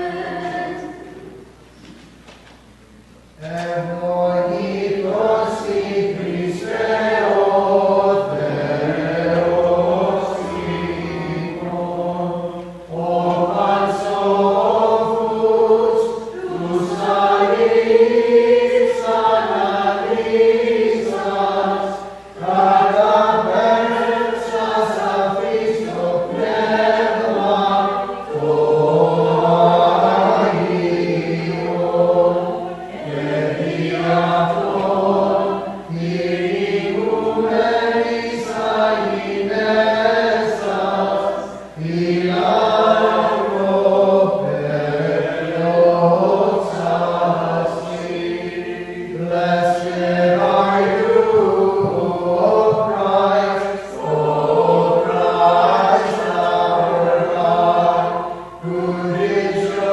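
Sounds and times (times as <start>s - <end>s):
voices singing liturgical chant: 0.0s - 1.6s, 2.8s - 59.9s.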